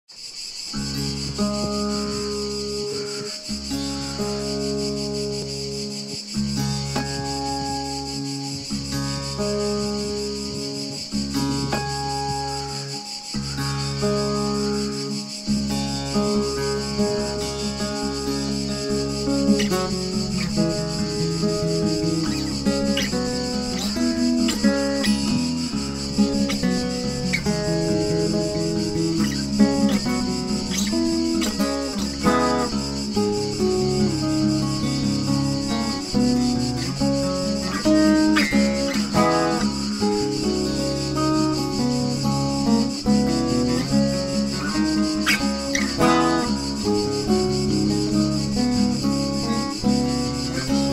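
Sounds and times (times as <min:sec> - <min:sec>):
cicadas droning: 0:00.0 - 0:50.9
fingerpicked acoustic guitar: 0:00.5 - 0:50.9.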